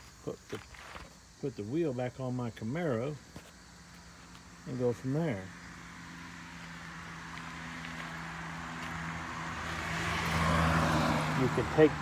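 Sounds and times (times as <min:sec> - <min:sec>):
motor vehicle: 0:02.4 - 0:12.0.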